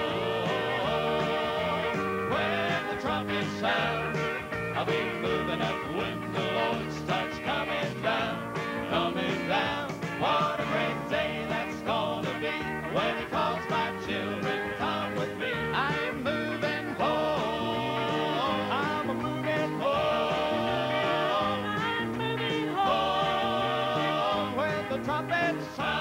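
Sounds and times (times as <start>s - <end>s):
gospel band instrumental: 0.0s - 26.0s.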